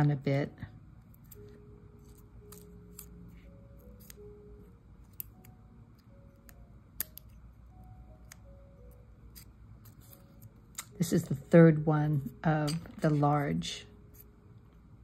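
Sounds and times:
soft background music: 0:00.0 - 0:15.0.

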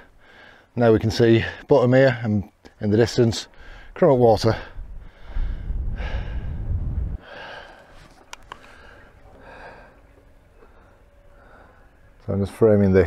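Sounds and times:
man breathing: 0:00.0 - 0:00.8, 0:03.5 - 0:12.2
wind buffeting microphone: 0:03.6 - 0:11.0.

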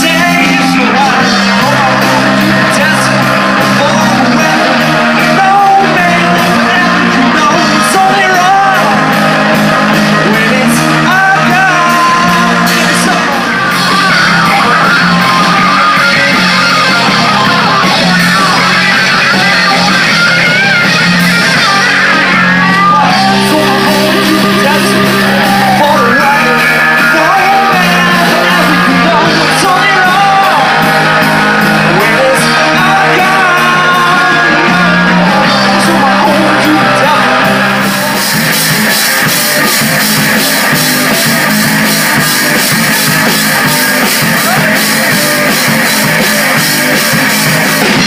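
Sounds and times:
bass guitar: 0:00.0 - 0:48.0
drums: 0:00.0 - 0:48.0
electric guitars: 0:00.0 - 0:48.0
guitar lead with bending notes: 0:00.0 - 0:48.0
live rock band playing: 0:00.0 - 0:48.0.

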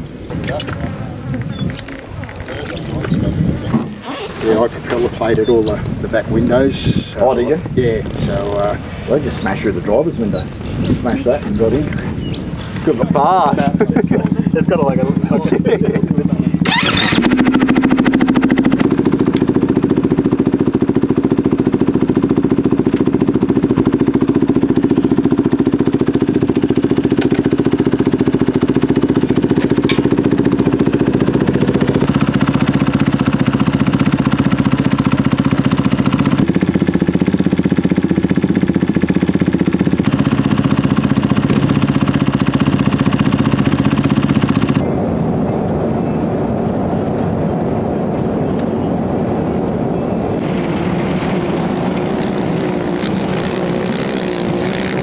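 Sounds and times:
dirt bike engine idling: 0:00.0 - 0:44.9
engine sharp burst: 0:16.4 - 0:44.8, 0:50.4 - 0:55.0.

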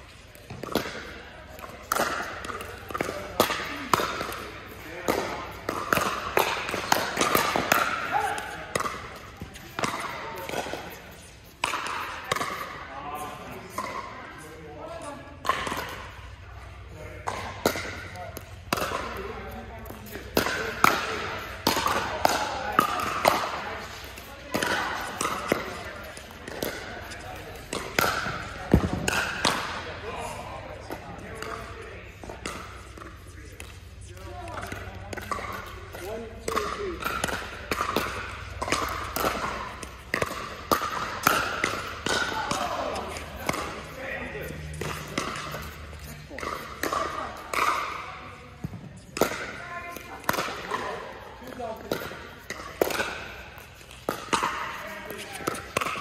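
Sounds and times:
voices in indoor hall: 0:00.0 - 0:56.0
paddles hitting plastic ball: 0:00.2 - 0:12.8, 0:17.2 - 0:30.0, 0:30.6 - 0:56.0.

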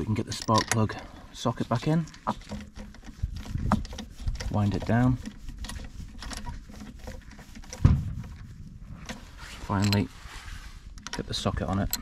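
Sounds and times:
socket wrench clicks and scraping: 0:00.0 - 0:01.0, 0:01.6 - 0:07.8, 0:09.0 - 0:10.1, 0:10.9 - 0:12.0
thump: 0:07.8 - 0:08.4.

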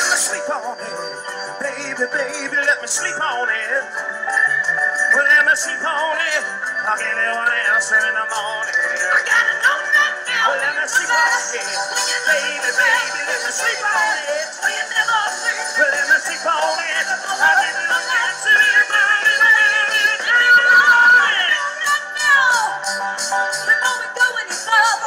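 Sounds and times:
person singing: 0:00.0 - 0:04.1, 0:05.1 - 0:22.9, 0:23.6 - 0:25.0.

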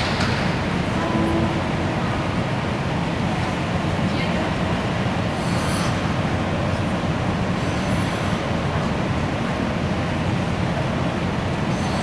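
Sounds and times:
arena room rumble: 0:00.0 - 0:12.0.

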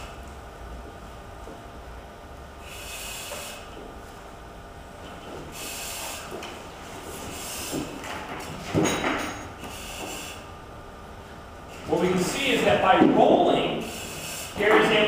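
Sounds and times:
breathing through regulator hissing: 0:02.6 - 0:03.8, 0:05.4 - 0:06.4, 0:07.1 - 0:08.0, 0:09.6 - 0:10.6, 0:13.6 - 0:14.7.

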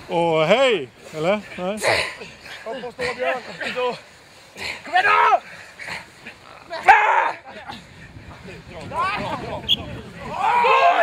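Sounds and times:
men shouting encouragement: 0:02.6 - 0:04.1, 0:04.7 - 0:05.5, 0:06.3 - 0:07.7, 0:08.6 - 0:11.0.

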